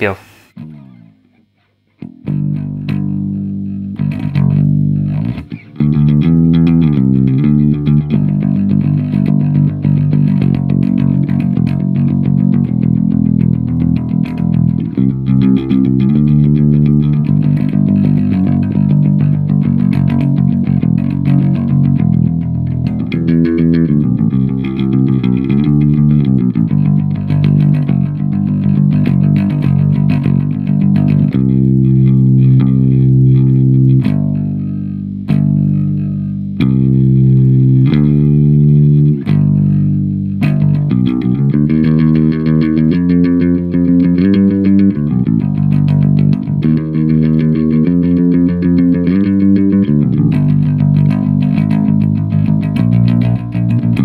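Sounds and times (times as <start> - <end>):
electric bass guitar line: 0.0 - 54.0.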